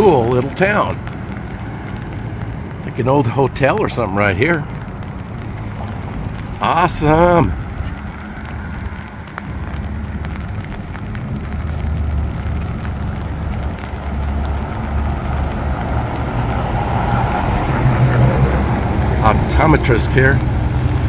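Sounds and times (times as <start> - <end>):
car tyres hissing on wet road: 0.0 - 21.0
low engine rumble: 0.0 - 21.0.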